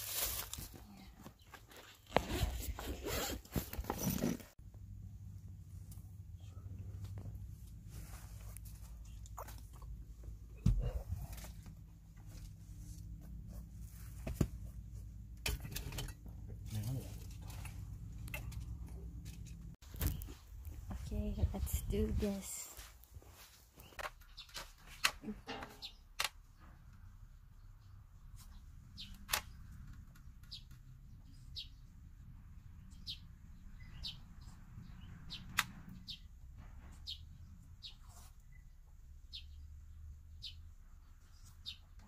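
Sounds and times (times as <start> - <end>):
outdoor rustling and handling noise: 0.0 - 31.7, 34.0 - 39.1.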